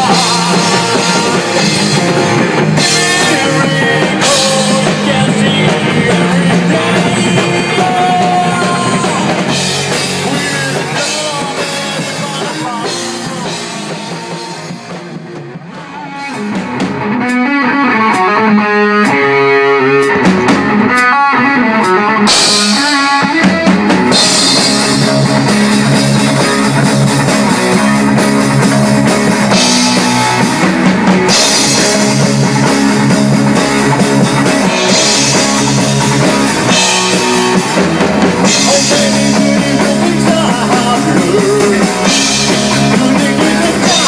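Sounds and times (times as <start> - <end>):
heavy metal band playing: 0.0 - 44.0.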